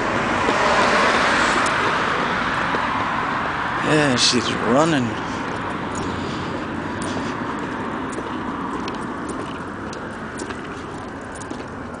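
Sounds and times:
freeway traffic noise: 0:00.0 - 0:12.0.

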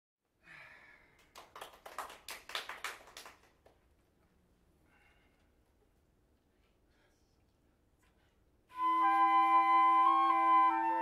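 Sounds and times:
small audience applause: 0:01.1 - 0:03.8.

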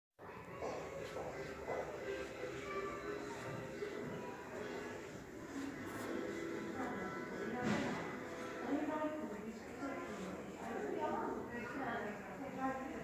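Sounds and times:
background chatter: 0:00.2 - 0:13.0.

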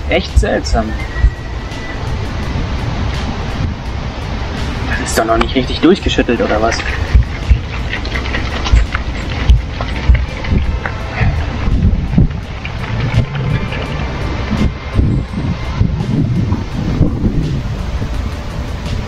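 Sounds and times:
faint background music: 0:00.0 - 0:19.0
wind buffeting microphone: 0:00.0 - 0:19.0.

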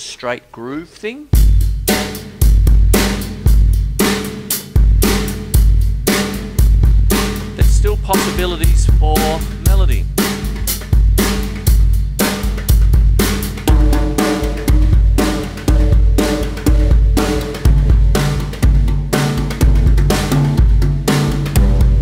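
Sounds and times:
drum kit groove: 0:01.3 - 0:22.0
pitched tom-toms: 0:01.3 - 0:22.0
bass drum beat: 0:01.4 - 0:22.0.

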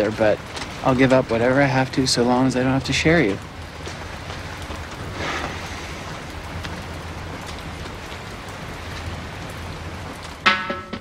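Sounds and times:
even hiss: 0:05.0 - 0:06.5.

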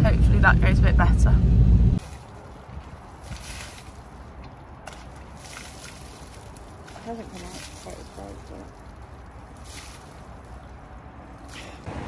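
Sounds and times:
steady low hum: 0:00.0 - 0:02.0
water splashing onto metal: 0:02.0 - 0:11.9.

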